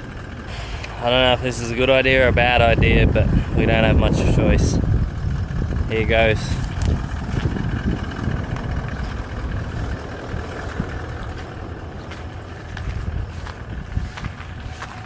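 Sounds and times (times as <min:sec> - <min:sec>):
wind rumbling on microphone: 0:00.0 - 0:15.0
footsteps through dry grass: 0:06.6 - 0:15.0.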